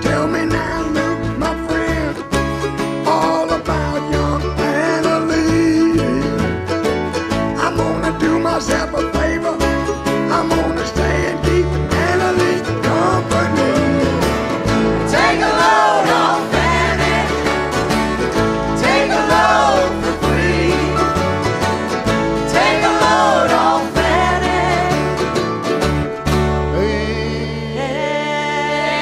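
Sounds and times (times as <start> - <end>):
acoustic guitar strumming: 0.0 - 29.0
mandolin picking: 0.0 - 29.0
upright bass notes: 0.0 - 29.0.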